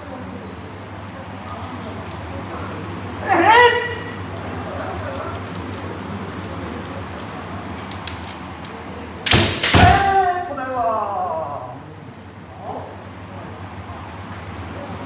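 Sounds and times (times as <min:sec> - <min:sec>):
bamboo sword hitting armour: 0:09.3 - 0:10.2.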